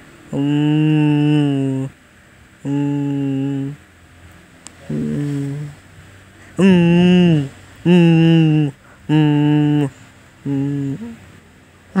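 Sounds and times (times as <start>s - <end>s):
person humming: 0.3s - 1.9s, 2.6s - 3.8s, 4.8s - 5.8s, 6.6s - 11.3s.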